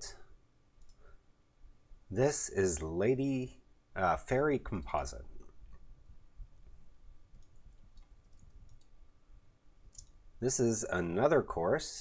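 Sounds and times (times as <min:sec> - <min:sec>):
low background hum: 0:00.0 - 0:12.0
faint computer mouse clicks: 0:00.8 - 0:01.1, 0:07.4 - 0:09.0, 0:09.9 - 0:10.2.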